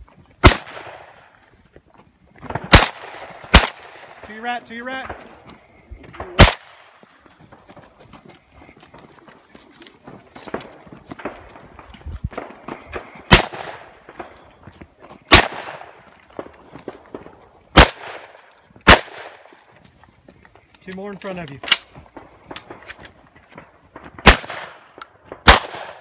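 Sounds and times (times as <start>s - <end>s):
loud gunshots with echo: 0.4s - 1.1s, 2.5s - 5.3s, 6.2s - 6.9s, 12.4s - 14.4s, 15.3s - 16.0s, 17.1s - 19.5s, 24.2s - 26.0s.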